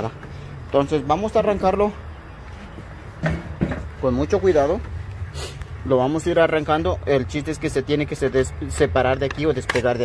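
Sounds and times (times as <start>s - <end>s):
man talking: 0.0s - 2.1s, 3.8s - 5.0s, 5.8s - 10.0s.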